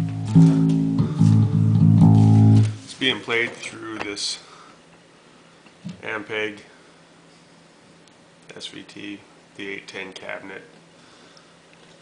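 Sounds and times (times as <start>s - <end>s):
electric bass plucked notes: 0.0s - 2.8s.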